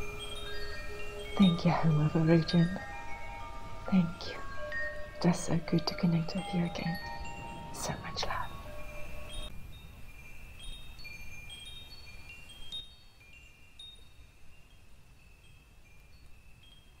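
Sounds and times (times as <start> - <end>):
wind chimes ringing softly: 0.0 - 17.0.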